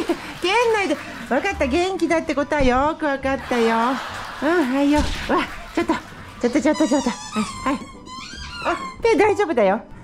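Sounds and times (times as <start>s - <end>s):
dog whining: 6.6s - 9.1s.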